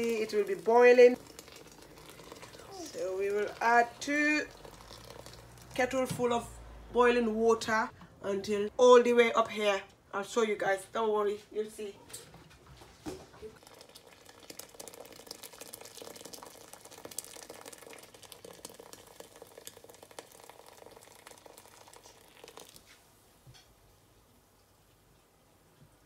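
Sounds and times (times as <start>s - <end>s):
water bubbling: 0.0s - 5.8s
water pouring from kettle: 0.0s - 6.1s, 13.5s - 23.1s.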